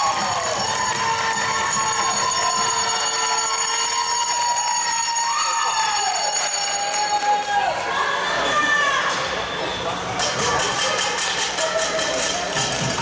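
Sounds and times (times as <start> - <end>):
spectators cheering and shouting: 0.0 - 13.0.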